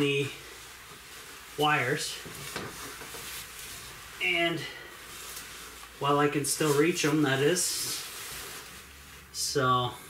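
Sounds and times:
padded jacket rustling: 0:00.0 - 0:10.0.

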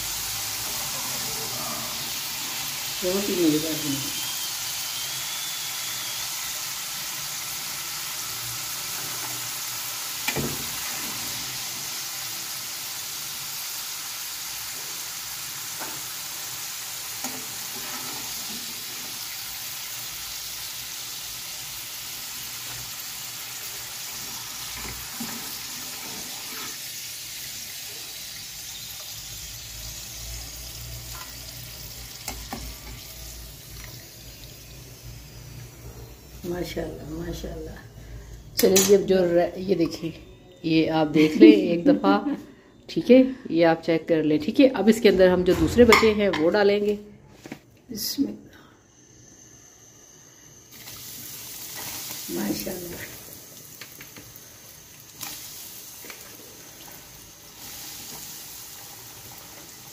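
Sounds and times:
fries deep-frying in hot oil: 0:00.0 - 0:39.0, 0:49.8 - 0:59.9.

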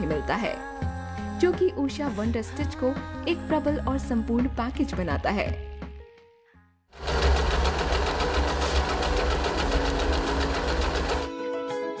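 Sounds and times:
music: 0:00.0 - 0:12.0
sewing machine running: 0:07.0 - 0:11.3.

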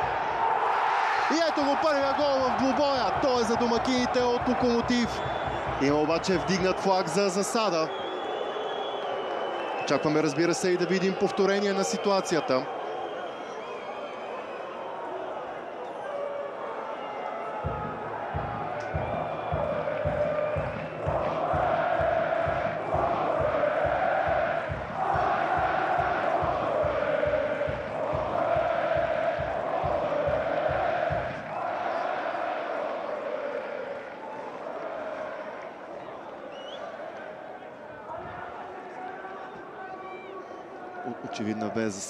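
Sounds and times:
crowd chanting: 0:00.0 - 0:09.8, 0:10.8 - 0:39.7
steady drum beat: 0:01.3 - 0:07.7, 0:17.6 - 0:32.3.

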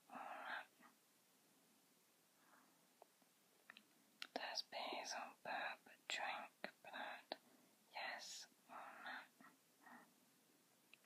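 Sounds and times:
person whispering: 0:00.0 - 0:01.0, 0:04.2 - 0:10.1.

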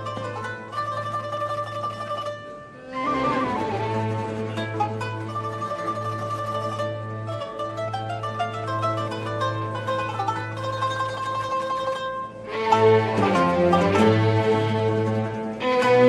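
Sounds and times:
full ensemble with bowed strings: 0:00.0 - 0:16.0
plucked-string melody: 0:00.0 - 0:16.0.

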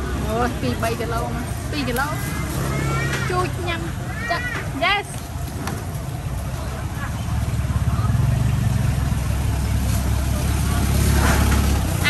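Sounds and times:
low engine rumble: 0:00.0 - 0:12.0.

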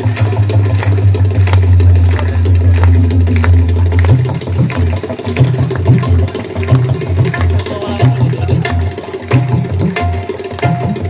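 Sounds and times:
deep drum roll: 0:00.0 - 0:08.8.

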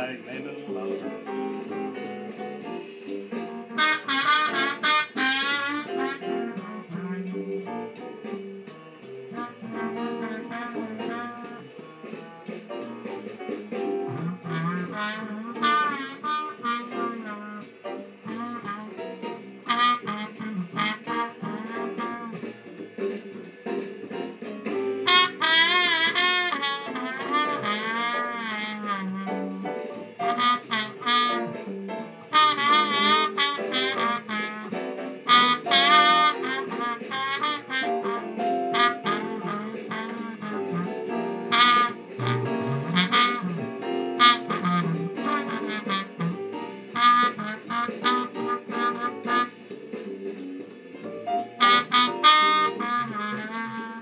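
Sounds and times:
backing accompaniment: 0:00.0 - 0:54.0
muted trombone jazz solo: 0:03.2 - 0:08.6, 0:09.2 - 0:12.2, 0:12.8 - 0:22.7, 0:24.6 - 0:49.7, 0:51.3 - 0:54.0.

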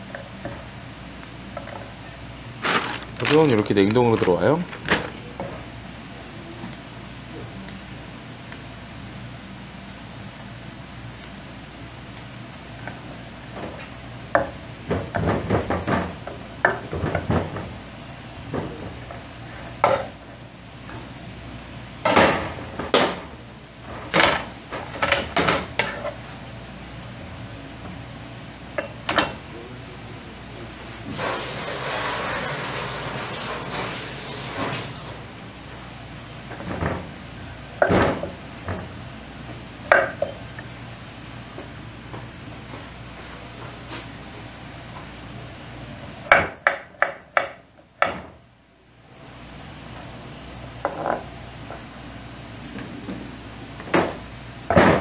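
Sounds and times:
steady hiss: 0:31.1 - 0:34.9.

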